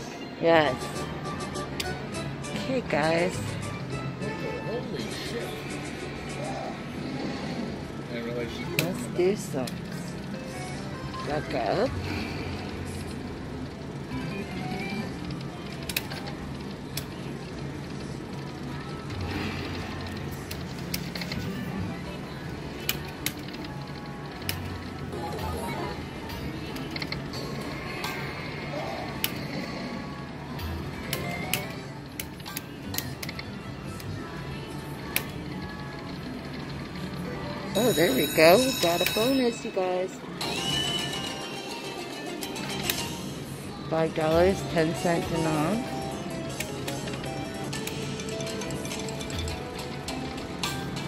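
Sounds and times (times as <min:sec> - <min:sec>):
slot machine music and effects: 0:00.0 - 0:07.6, 0:08.5 - 0:16.9, 0:36.1 - 0:51.0.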